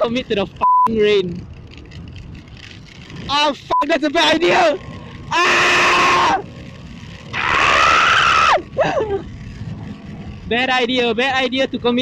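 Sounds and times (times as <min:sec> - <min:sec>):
man screaming: 0:05.2 - 0:06.5, 0:07.3 - 0:09.1.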